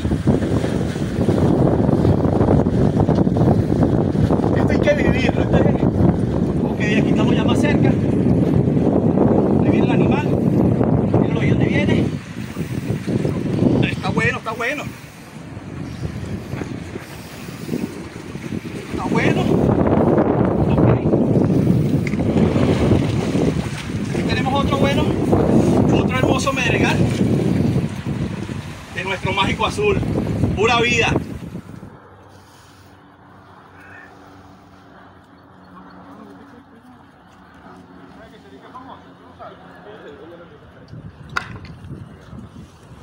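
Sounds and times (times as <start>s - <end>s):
sea rushing: 0.0s - 43.0s
wind buffeting microphone: 0.0s - 43.0s.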